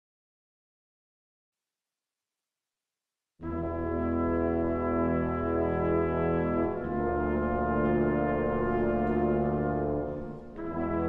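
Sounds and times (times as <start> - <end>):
orchestral brass chord: 3.4 - 11.0.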